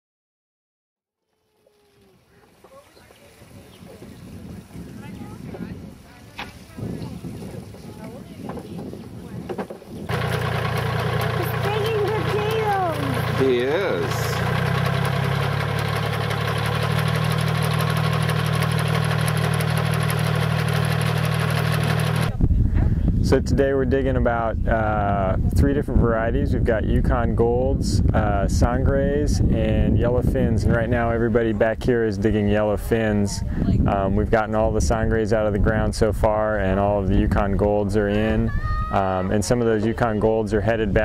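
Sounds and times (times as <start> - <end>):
faint outdoor voices: 1.4 - 10.1, 11.3 - 14.4
tractor engine running under load: 8.4 - 22.4.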